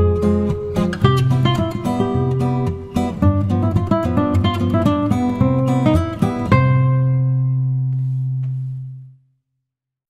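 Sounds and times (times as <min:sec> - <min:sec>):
acoustic guitar chord ringing: 0:00.0 - 0:08.9.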